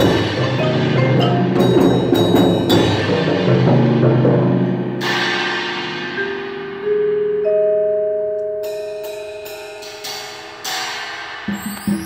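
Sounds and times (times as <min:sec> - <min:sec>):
marimbas vibraphones and timpani: 0:00.0 - 0:12.0.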